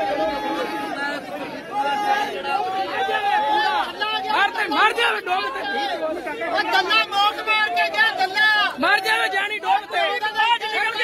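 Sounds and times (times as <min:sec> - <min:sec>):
crowd shouting slogans: 0:00.0 - 0:11.0.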